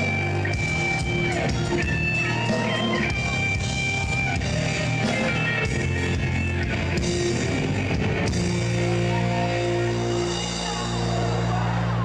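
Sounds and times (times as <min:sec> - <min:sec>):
bass: 0:00.0 - 0:12.0
drums: 0:00.0 - 0:12.0
electric guitar: 0:00.0 - 0:12.0.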